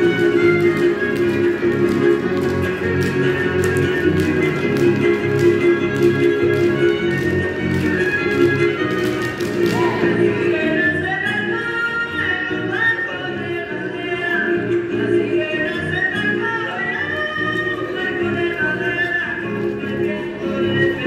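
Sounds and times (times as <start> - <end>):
dance steps tapping on concrete: 0.0 - 10.1
fiddle and guitar dance tune: 0.0 - 21.0.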